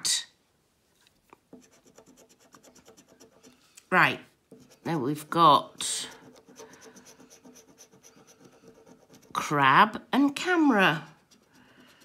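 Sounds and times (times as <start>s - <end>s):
coin scratching scratchcard: 4.5s - 9.6s.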